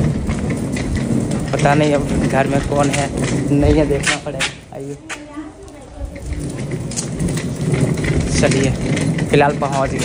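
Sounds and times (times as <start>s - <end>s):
crackling rumbling on microphone: 0.0s - 10.0s.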